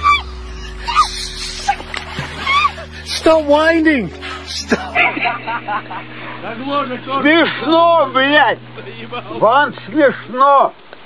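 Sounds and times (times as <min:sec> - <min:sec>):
woman yelping: 0:00.0 - 0:02.8.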